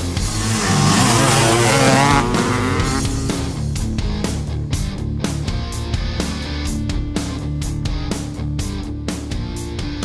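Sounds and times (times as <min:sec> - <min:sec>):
motorcycle engine revving: 0:00.0 - 0:05.4
rock music: 0:00.0 - 0:10.0.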